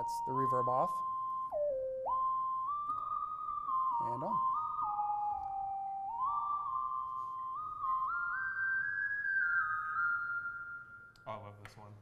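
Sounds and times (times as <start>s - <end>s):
synthesizer legato melody: 0.0s - 11.2s.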